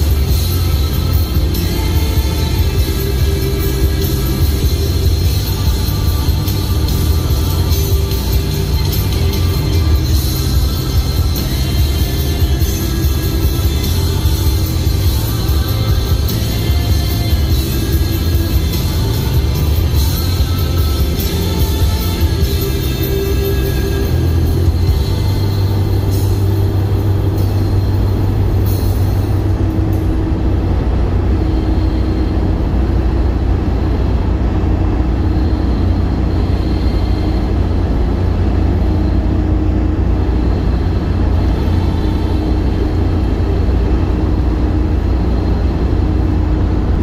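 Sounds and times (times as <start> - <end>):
car cabin road rumble: 0.0 - 47.0
music playing: 0.0 - 47.0.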